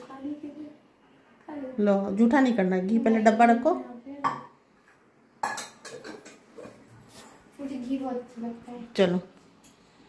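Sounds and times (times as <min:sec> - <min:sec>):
metal kitchenware clinking: 0:05.4 - 0:06.8.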